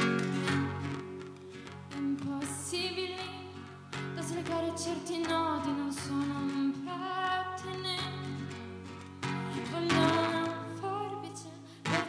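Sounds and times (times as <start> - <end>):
strummed acoustic guitar: 0.0 - 12.0
woman singing: 1.9 - 8.6, 9.4 - 12.0.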